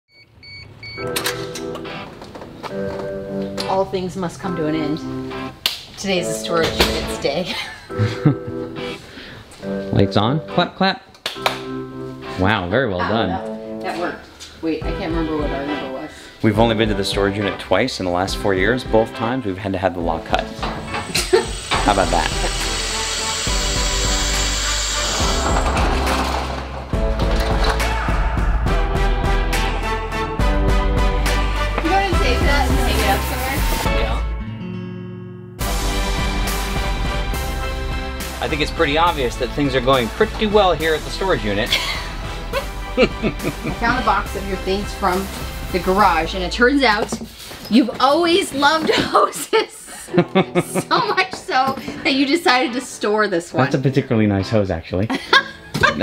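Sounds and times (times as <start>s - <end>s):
background music with sustained chords: 1.0s - 10.8s, 11.4s - 46.6s
power drill whirring into metal: 20.6s - 26.4s.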